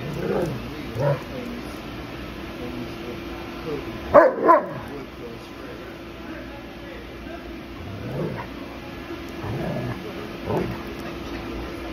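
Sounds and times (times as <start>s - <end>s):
dogs growling: 0.0s - 1.5s, 7.8s - 8.6s, 9.3s - 11.9s.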